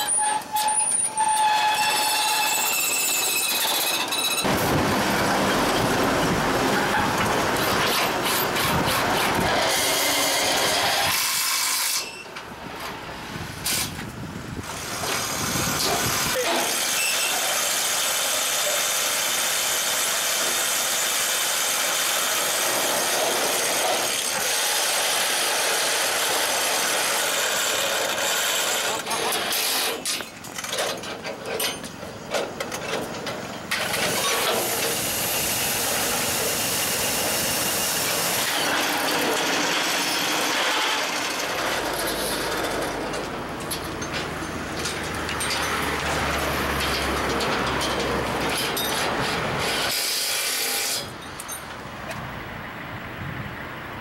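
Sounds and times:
road traffic: 0:00.0 - 0:54.0
truck passing: 0:04.4 - 0:11.0, 0:37.3 - 0:49.9
metallic clicking of panels: 0:41.4 - 0:49.4.

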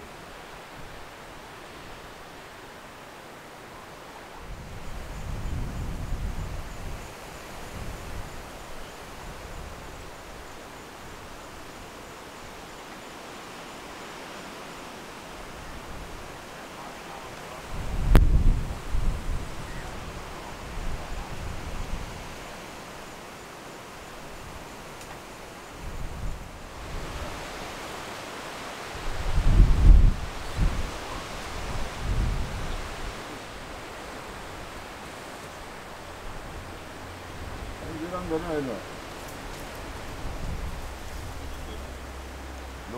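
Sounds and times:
steady outdoor hiss: 0:00.0 - 0:42.9
wind buffeting microphone: 0:04.3 - 0:12.1, 0:15.3 - 0:23.2, 0:24.0 - 0:42.9.

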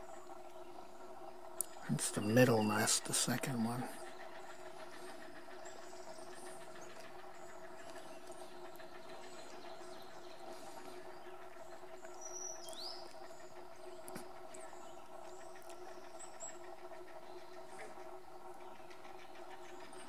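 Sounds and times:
faint low hum: 0:00.0 - 0:20.0
small bird chirps: 0:05.6 - 0:16.6.

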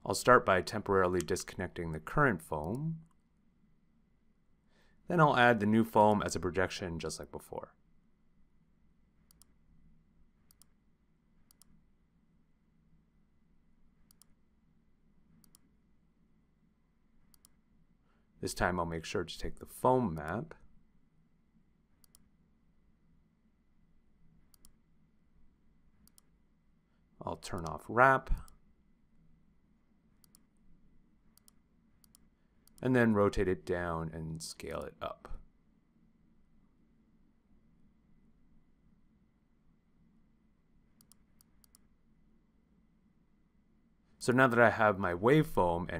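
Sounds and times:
computer mouse clicks: 0:02.6 - 0:03.2, 0:09.2 - 0:09.6, 0:10.4 - 0:10.8, 0:11.4 - 0:11.8, 0:14.0 - 0:14.4, 0:15.4 - 0:15.7, 0:17.3 - 0:17.6, 0:22.0 - 0:22.3, 0:24.5 - 0:24.8, 0:26.0 - 0:26.4, 0:30.2 - 0:30.6, 0:31.3 - 0:32.8, 0:41.0 - 0:41.9.

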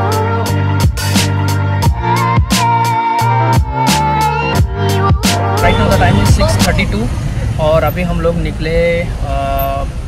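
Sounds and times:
background music: 0:00.0 - 0:07.1
car interior rumble: 0:05.6 - 0:10.0
man talking: 0:05.6 - 0:10.0.

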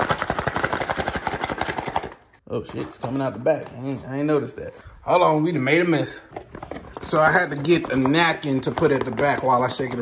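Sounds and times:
food rattling in cardboard box: 0:00.0 - 0:03.4.

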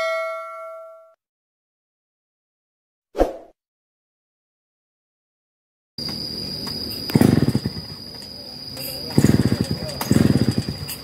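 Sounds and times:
high-pitched insect trill: 0:06.0 - 0:11.0
chainsaw engine pulsing: 0:06.7 - 0:11.0.

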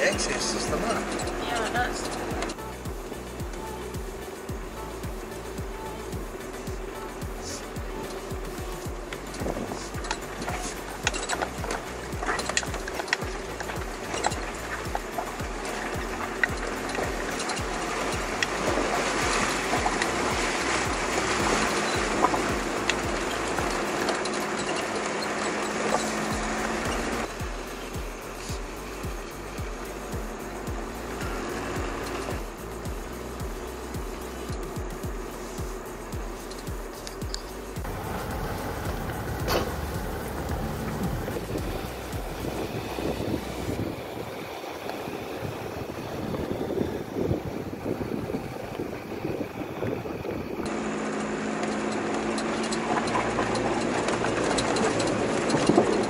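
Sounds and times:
vehicle engines running: 0:00.0 - 0:56.0
water rushing and splashing: 0:00.0 - 0:56.0.

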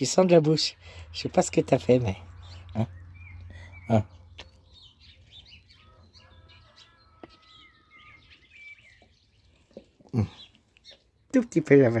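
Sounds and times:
birds chirping and whistling: 0:00.8 - 0:11.5.

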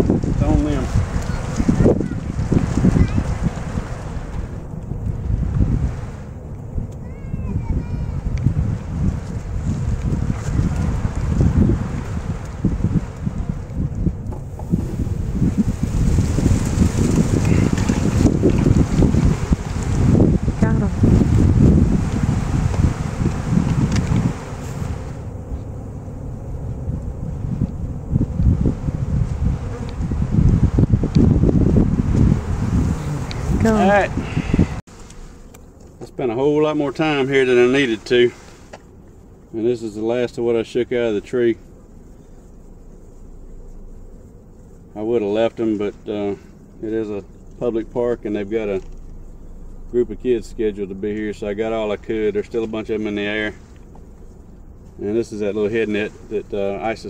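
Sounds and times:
bees buzzing: 0:00.0 - 0:57.0
wind rumbling on microphone: 0:00.0 - 0:57.0.

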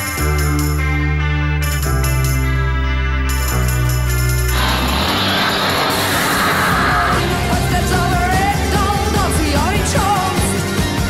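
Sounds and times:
rushing noise riser: 0:04.5 - 0:08.4.

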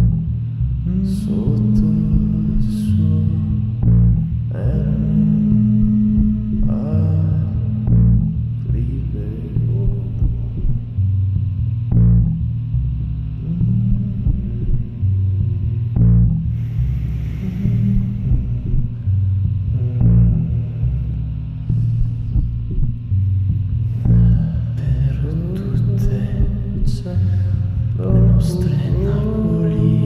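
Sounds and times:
deep sustained bass notes: 0:00.0 - 0:30.0.

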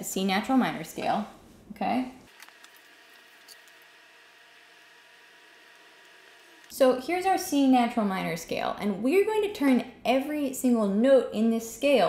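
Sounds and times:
faint room hiss: 0:00.0 - 0:04.1.

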